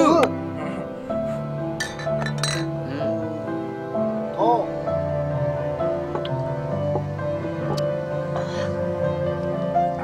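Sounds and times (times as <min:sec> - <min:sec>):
background music: 0:00.0 - 0:10.0
glass bottles clinking: 0:01.8 - 0:02.8.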